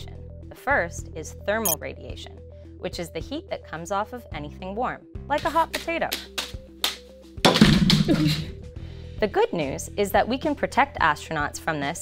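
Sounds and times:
light background music with drums: 5.2 - 12.0.

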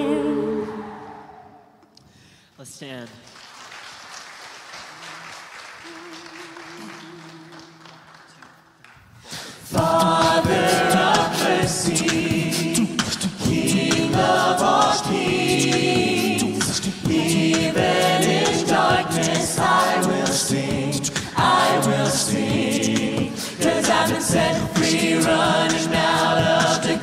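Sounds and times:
a cappella group singing in harmony: 0.0 - 1.8, 5.9 - 8.1, 9.4 - 27.0.

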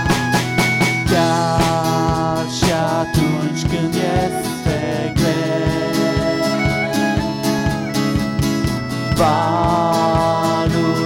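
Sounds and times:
acoustic guitar: 0.0 - 11.0
violin: 0.0 - 11.0
worship band playing: 0.0 - 11.0.

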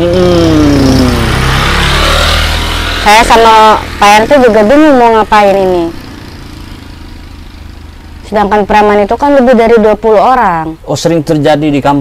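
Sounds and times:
vehicle engine passing: 0.0 - 12.0.

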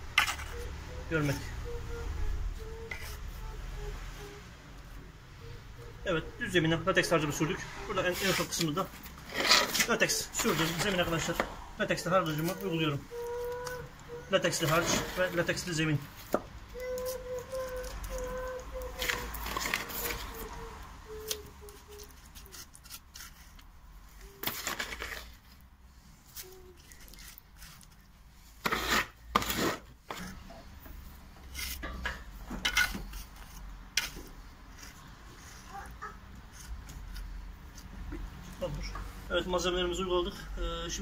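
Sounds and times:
trowel scraping cement mortar: 8.0 - 11.4, 14.4 - 15.5, 24.4 - 25.4, 28.6 - 30.4.

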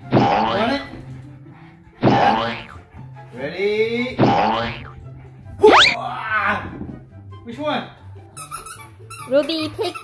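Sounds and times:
background music: 0.0 - 10.0
squeaky dog toys squeezed: 5.6 - 6.0, 8.4 - 10.0.

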